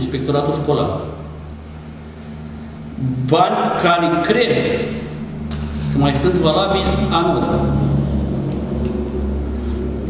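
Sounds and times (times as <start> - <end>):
deep rumble of room noise: 0.0 - 10.0.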